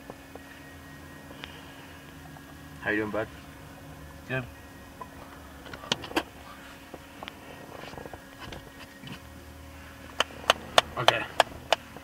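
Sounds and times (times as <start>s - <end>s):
low hum inside car: 0.0s - 12.0s.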